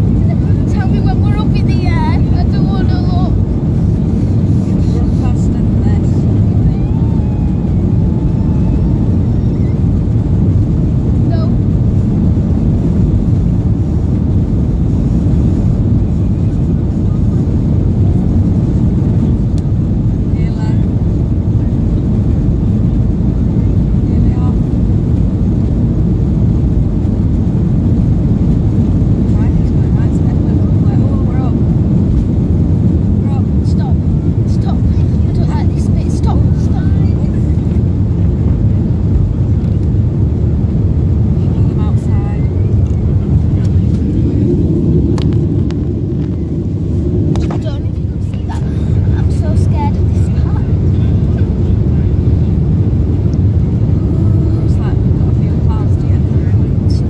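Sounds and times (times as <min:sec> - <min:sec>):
jet engines rumbling in cabin: 0:00.0 - 0:57.0
rushing air: 0:00.0 - 0:57.0.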